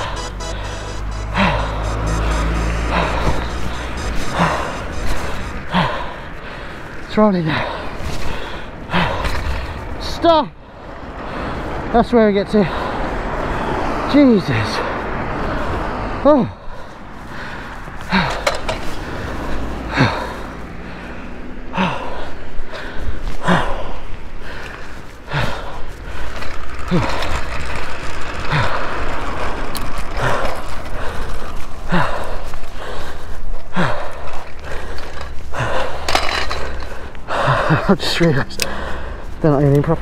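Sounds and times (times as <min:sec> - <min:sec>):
man breathing hard and groaning: 0:05.2 - 0:09.8, 0:15.3 - 0:26.3, 0:30.2 - 0:37.9, 0:38.6 - 0:39.4.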